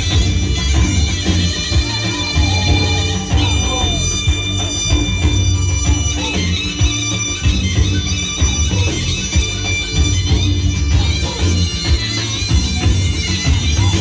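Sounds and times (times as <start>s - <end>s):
drum and bass beat: 0.0s - 14.0s.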